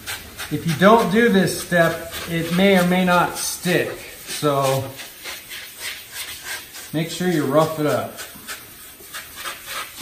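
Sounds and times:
abrasive pad scrubbing fiberglass: 0:00.0 - 0:10.0.

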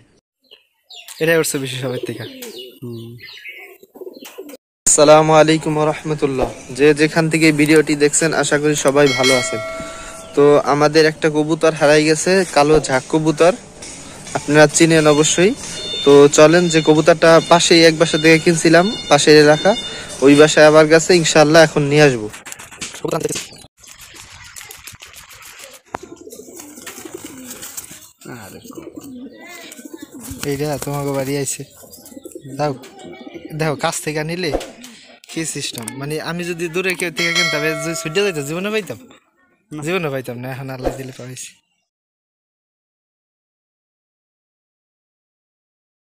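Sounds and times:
pigeons cooing: 0:01.8 - 0:04.6, 0:25.1 - 0:34.0.

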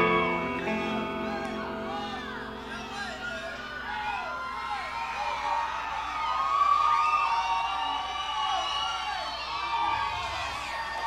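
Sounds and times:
crowd cheering and screaming: 0:00.0 - 0:11.0.

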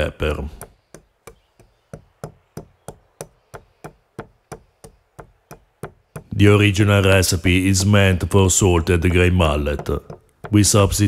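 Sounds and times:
pestle pounding peppercorns in mortar: 0:00.5 - 0:06.4, 0:09.4 - 0:11.0.

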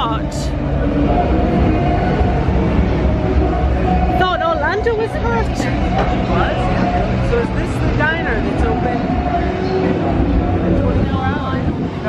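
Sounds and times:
people talking nearby: 0:00.0 - 0:12.0
traffic rumble: 0:00.0 - 0:12.0.

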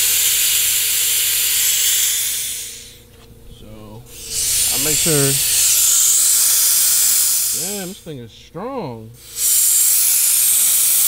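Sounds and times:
compressed air hissing from hose: 0:00.0 - 0:03.1, 0:04.0 - 0:08.1, 0:09.2 - 0:11.0.

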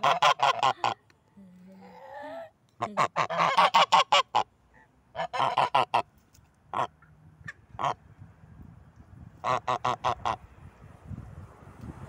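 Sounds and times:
goose honking: 0:00.0 - 0:01.0, 0:02.9 - 0:04.5, 0:05.1 - 0:06.1, 0:06.7 - 0:06.9, 0:09.4 - 0:10.4.

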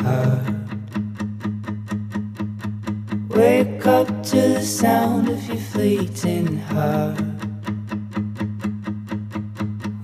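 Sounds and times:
guitar picking notes: 0:00.0 - 0:10.0.

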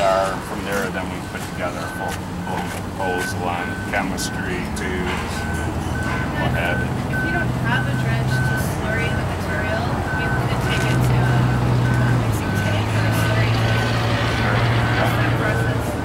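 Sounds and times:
reversing alarm beeping: 0:00.0 - 0:16.0
vehicle engine running: 0:00.0 - 0:16.0.

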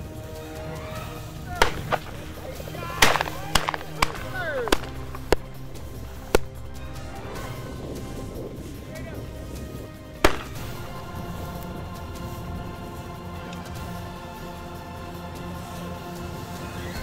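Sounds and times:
music: 0:00.0 - 0:17.0
shotgun shots: 0:01.6 - 0:06.6, 0:10.2 - 0:10.9.

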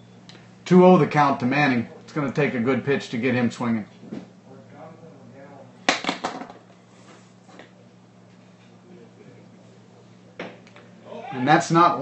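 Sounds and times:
steady low hum: 0:00.0 - 0:12.0
faint distant voices: 0:07.4 - 0:12.0.

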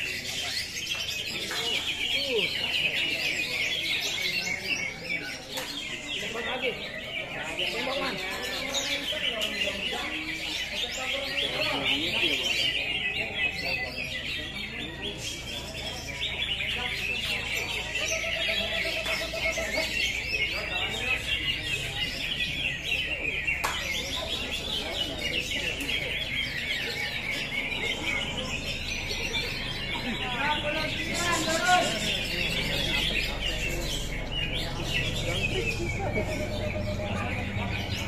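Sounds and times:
birds chirping and trilling: 0:00.0 - 0:38.0
murmur of voices: 0:00.0 - 0:38.0.

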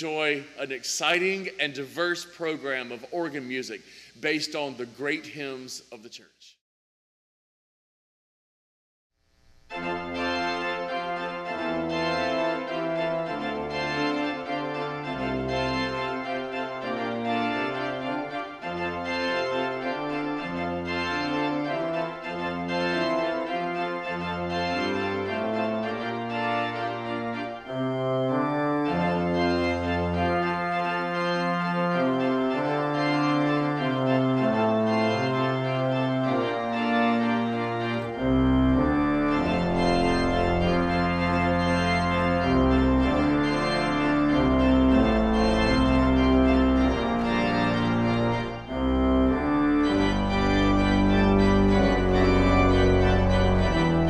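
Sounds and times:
church organ playing: 0:00.0 - 0:06.2, 0:09.7 - 0:54.0
deep organ pedal bass notes: 0:09.7 - 0:54.0.

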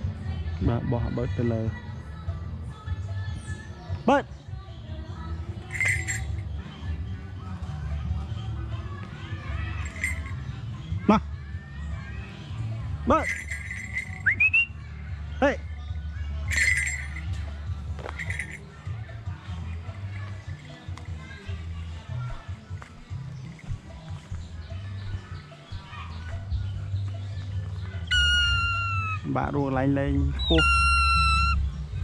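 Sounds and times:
person whistling: 0:14.2 - 0:14.7, 0:28.1 - 0:29.2, 0:30.4 - 0:31.6
person calling ba: 0:28.1 - 0:29.3.

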